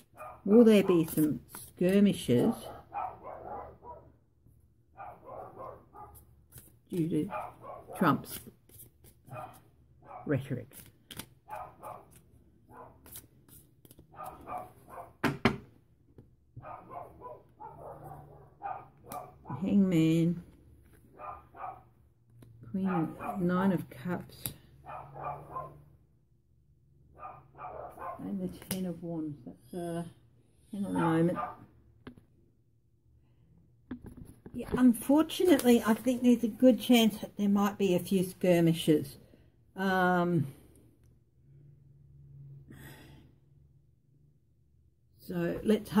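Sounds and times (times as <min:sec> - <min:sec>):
dog barking: 0:00.1 - 0:00.5, 0:02.5 - 0:04.2, 0:05.0 - 0:06.2, 0:07.3 - 0:08.0, 0:09.3 - 0:10.3, 0:11.5 - 0:13.0, 0:14.1 - 0:15.2, 0:16.6 - 0:19.6, 0:21.2 - 0:21.9, 0:22.8 - 0:23.5, 0:24.8 - 0:25.8, 0:27.2 - 0:28.3, 0:31.0 - 0:31.7.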